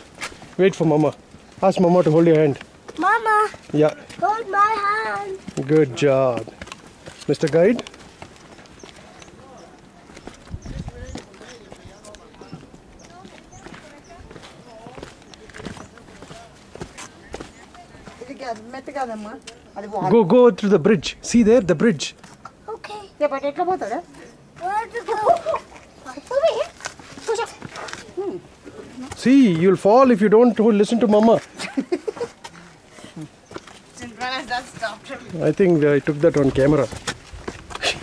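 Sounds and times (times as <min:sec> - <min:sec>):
footsteps on stone: 0:00.0 - 0:20.3, 0:24.0 - 0:38.0
child's wordless calls: 0:03.0 - 0:03.6, 0:04.2 - 0:05.4
faint voices talking: 0:08.6 - 0:20.2.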